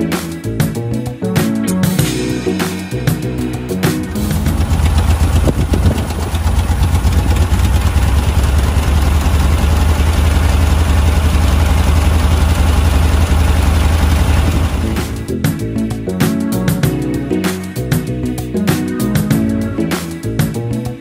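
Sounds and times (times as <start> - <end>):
car engine idling: 4.0 - 15.8.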